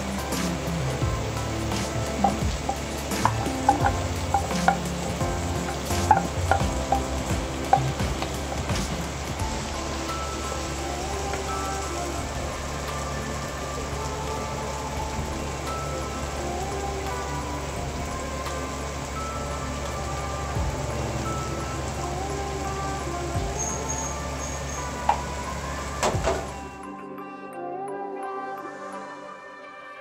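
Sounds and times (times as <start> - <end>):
food sizzling in a frying pan: 0.0 - 26.5
soft background music: 0.0 - 30.0.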